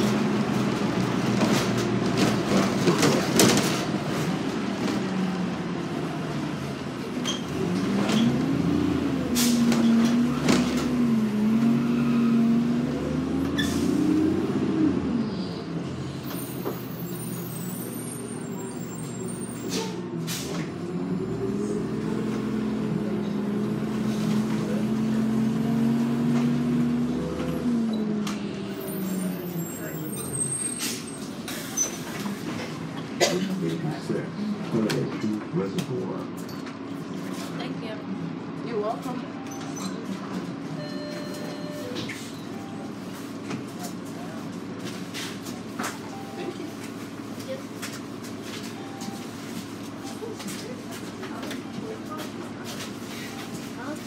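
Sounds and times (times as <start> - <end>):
bus engine: 0.0 - 54.0.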